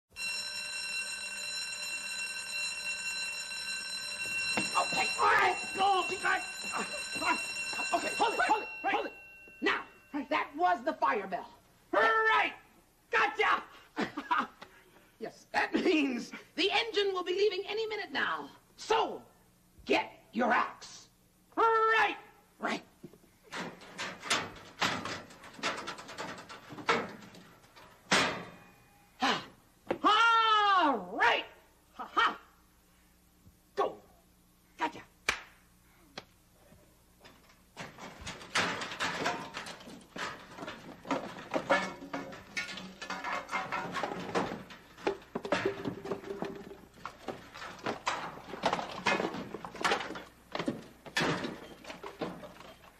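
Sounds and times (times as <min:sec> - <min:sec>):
fire alarm bell ringing: 0:00.1 - 0:10.2
voices talking: 0:04.6 - 0:12.5
knocking and clattering at metal locker: 0:23.5 - 0:28.6, 0:37.8 - 0:52.8.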